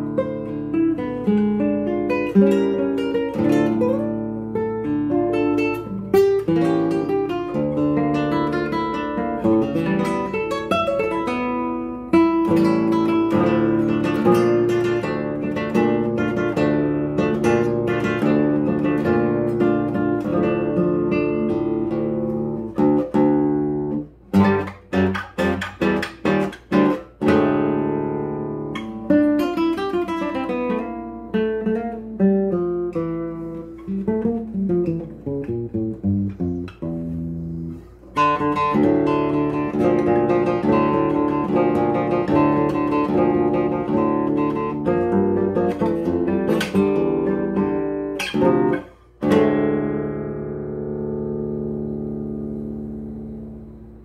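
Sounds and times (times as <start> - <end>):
classical guitar fingerstyle: 0.0 - 54.0.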